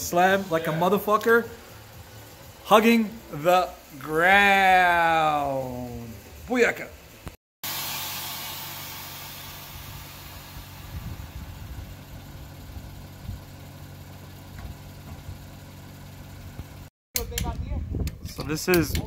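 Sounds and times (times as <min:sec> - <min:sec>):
car engine idling: 0:00.0 - 0:16.9
hiss: 0:07.6 - 0:11.6.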